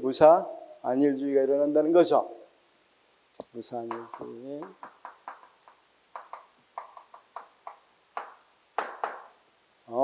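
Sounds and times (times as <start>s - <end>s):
chalk tapping on a blackboard: 3.4s - 9.4s.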